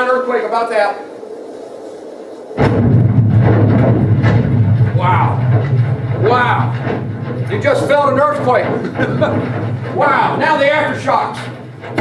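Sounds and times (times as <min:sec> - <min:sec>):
loud boom and deep rumble: 0:02.2 - 0:12.0.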